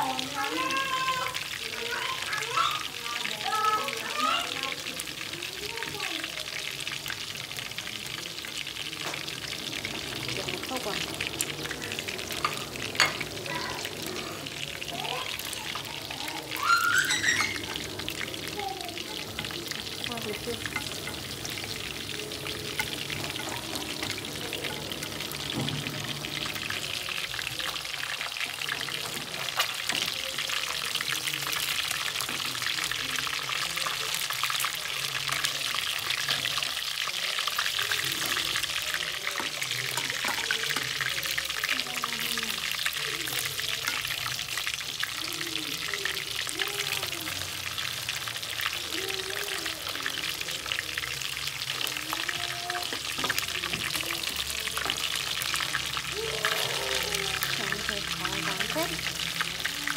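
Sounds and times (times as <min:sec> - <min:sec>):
fish frying in oil: 0:00.0 - 0:59.9.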